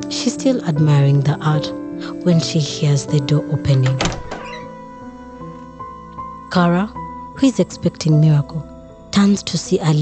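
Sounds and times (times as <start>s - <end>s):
soft background music: 0.0s - 10.0s
door opening sound effect: 3.8s - 4.9s.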